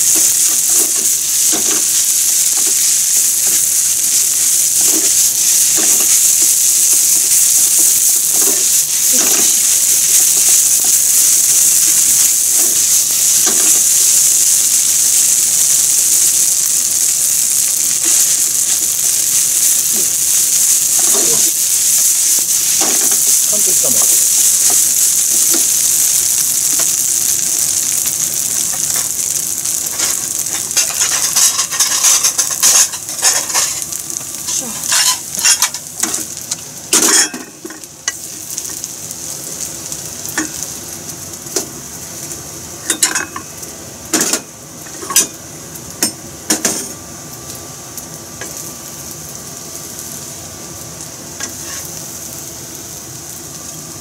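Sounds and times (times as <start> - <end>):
rice sizzling in a frying pan: 0.0 - 54.0.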